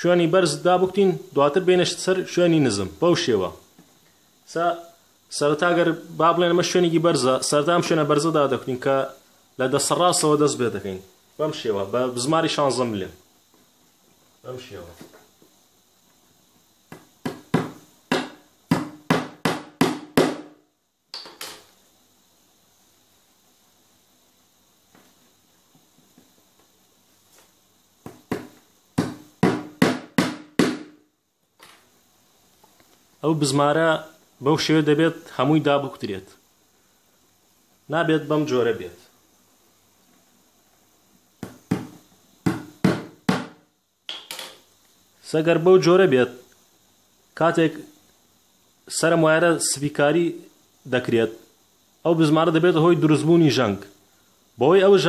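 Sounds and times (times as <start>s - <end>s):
hammer striking nail: 16.9s - 20.6s, 28.1s - 31.0s, 41.4s - 44.3s
hammer driving nail into plywood: 28.3s - 30.9s.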